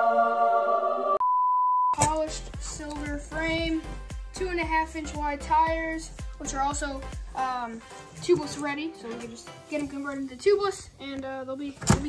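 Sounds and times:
background music: 0.0s - 1.2s, 2.0s - 12.0s
music with a beat: 2.0s - 8.6s.

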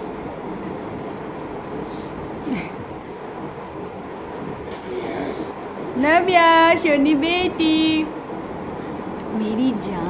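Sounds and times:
steady hiss and hum: 0.0s - 10.0s.

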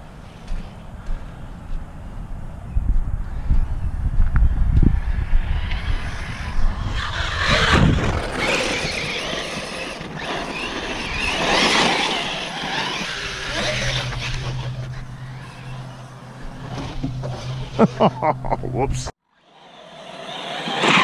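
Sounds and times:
electric motor whine: 4.7s - 17.9s, 19.4s - 21.0s
tyres churning dirt: 5.3s - 21.0s.

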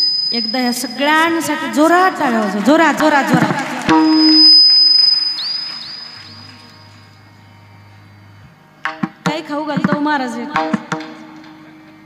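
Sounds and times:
faint high whistling tone: 0.0s - 1.2s, 4.0s - 7.1s
low hum: 0.0s - 2.2s.

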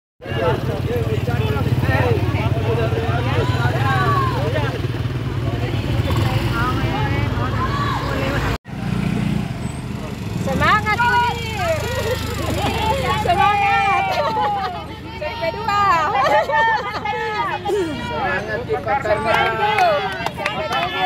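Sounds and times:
people calling out: 0.2s - 5.0s, 10.5s - 21.0s
motor scooter engine running: 10.0s - 14.8s.

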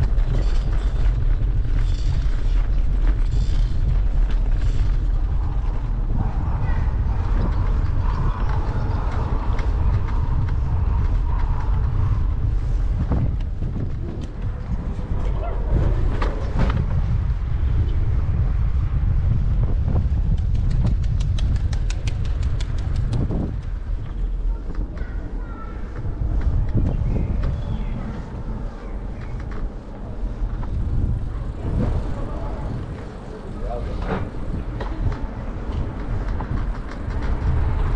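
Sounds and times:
wind buffeting microphone: 0.0s - 37.9s.

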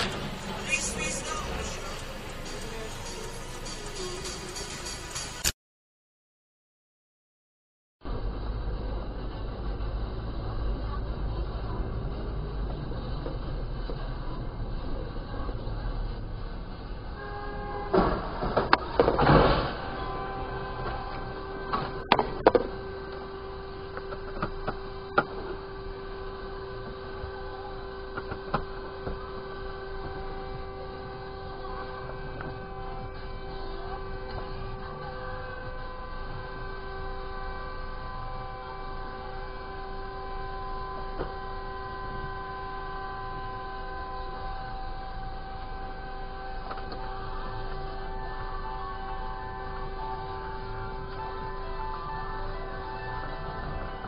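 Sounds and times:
car engine and tyres rumble: 0.0s - 5.4s, 8.0s - 54.0s
car horn sounding steadily: 0.0s - 5.5s, 10.0s - 54.0s.

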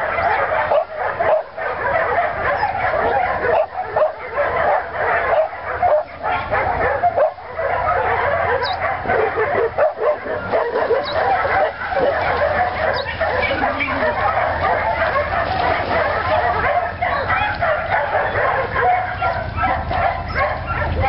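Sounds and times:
dogs yipping and whining: 0.0s - 21.0s.

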